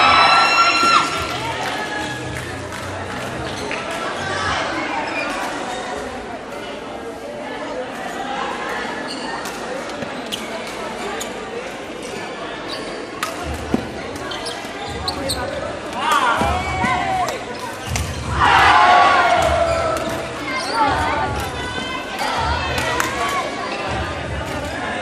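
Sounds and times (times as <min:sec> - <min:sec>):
shoes squealing on court floor: 0:09.0 - 0:11.5, 0:12.6 - 0:15.7, 0:19.3 - 0:21.0.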